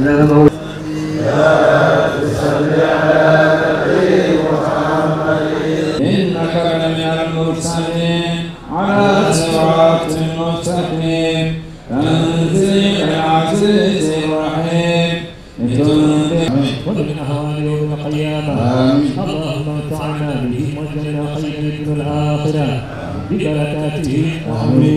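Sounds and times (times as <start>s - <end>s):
men chanting: 0.0s - 24.9s.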